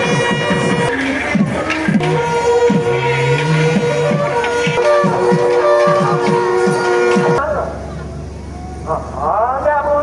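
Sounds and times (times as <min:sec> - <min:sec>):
brass horn low note: 0:00.0 - 0:07.4
ensemble music: 0:00.0 - 0:09.1.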